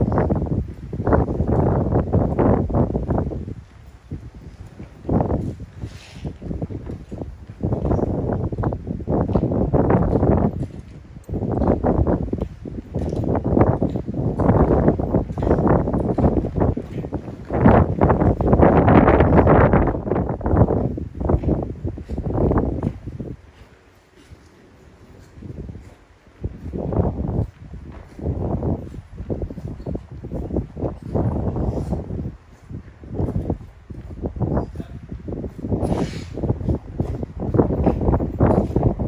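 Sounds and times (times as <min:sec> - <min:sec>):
wind buffeting microphone: 0:00.0 - 0:39.0.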